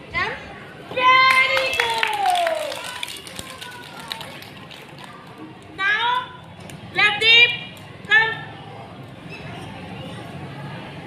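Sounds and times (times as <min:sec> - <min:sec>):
young children chattering: 0:02.6 - 0:06.3, 0:08.4 - 0:11.0.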